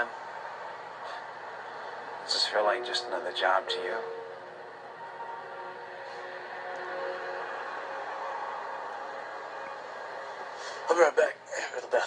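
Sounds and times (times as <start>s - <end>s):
soft film score: 0.0s - 12.0s.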